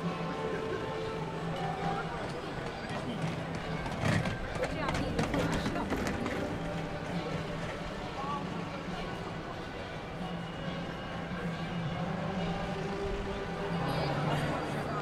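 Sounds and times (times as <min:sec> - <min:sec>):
passers-by talking: 0:00.0 - 0:15.0.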